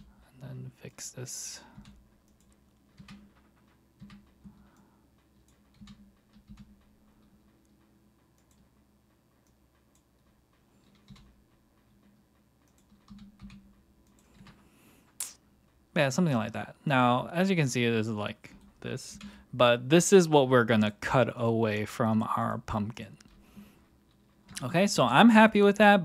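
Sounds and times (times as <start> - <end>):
computer keyboard keystrokes: 1.7 - 14.6.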